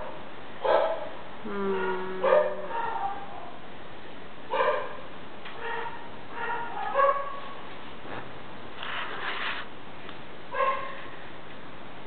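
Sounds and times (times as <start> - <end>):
dog barking and yipping: 0.6 - 1.1, 2.2 - 3.5, 4.5 - 5.0, 5.6 - 7.5, 10.5 - 11.0.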